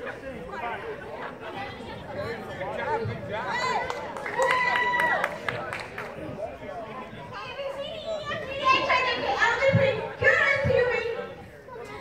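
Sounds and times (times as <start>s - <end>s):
crowd talking: 0.0s - 12.0s
children's voices: 7.2s - 12.0s.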